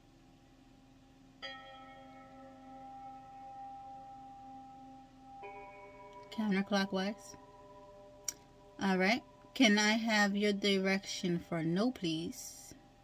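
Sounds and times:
bell-like tone: 1.4 - 12.8
higher bell-like tone: 1.4 - 13.0.

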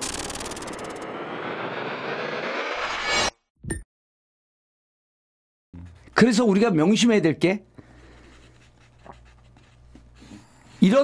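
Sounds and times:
low rumble: 0.0 - 3.4
noisy whoosh: 0.0 - 3.5.

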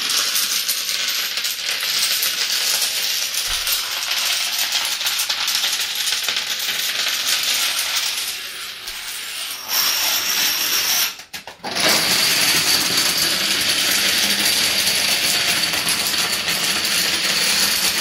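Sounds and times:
plastic dominoes clattering: 0.0 - 18.0.

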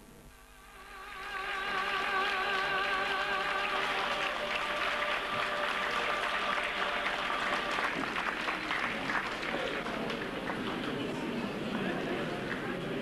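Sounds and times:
crowd applauding: 0.8 - 13.0.

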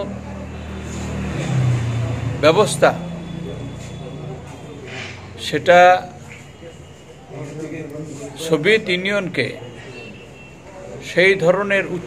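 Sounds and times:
vehicle engine humming: 0.0 - 7.0.

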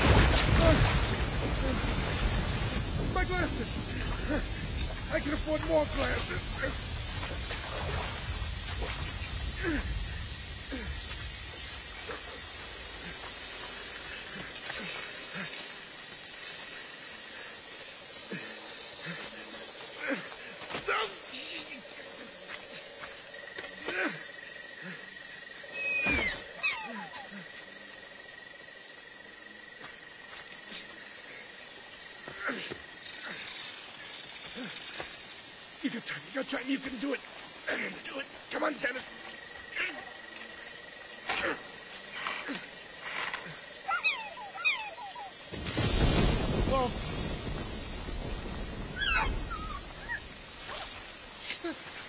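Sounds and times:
rain: 0.0 - 52.0
animal call gliding downward: 48.9 - 50.2.

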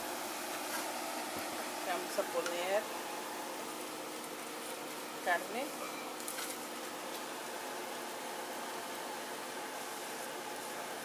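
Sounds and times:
meat sizzling in a pan: 6.0 - 11.0.

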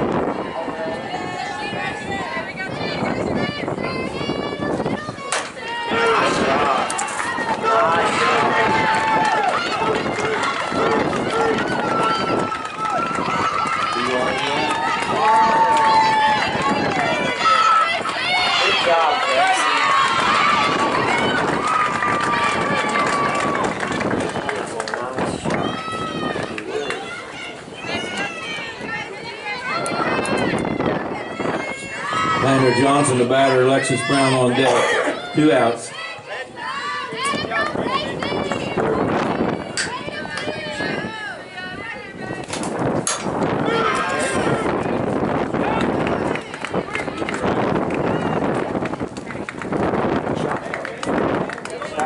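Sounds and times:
crowd shouting and cheering: 0.0 - 52.0.

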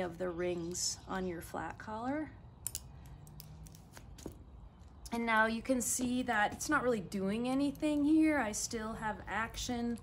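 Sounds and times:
carabiner metallic clicks: 2.5 - 4.4.

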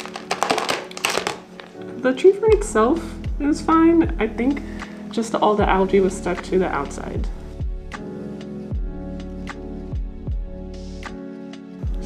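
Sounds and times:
thin plastic cup rustling: 0.0 - 2.0
soft background music: 0.0 - 12.0.

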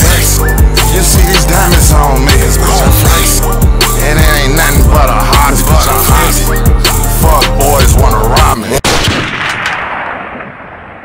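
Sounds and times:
gunshot-style blast: 8.8 - 11.0.

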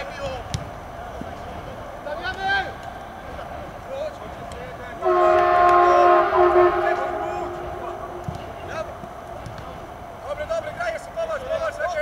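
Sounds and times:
horn sounding a chord: 5.0 - 9.4.

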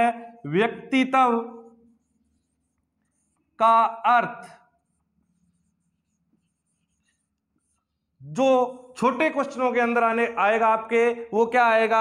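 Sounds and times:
man speaking: 0.0 - 1.8, 3.6 - 4.7, 8.2 - 12.0
marker writing on whiteboard: 0.7 - 12.0.

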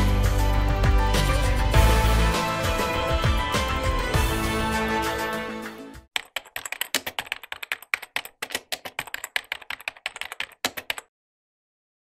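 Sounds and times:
theme music: 0.0 - 6.1
keyboard typing clicks: 6.2 - 11.1.

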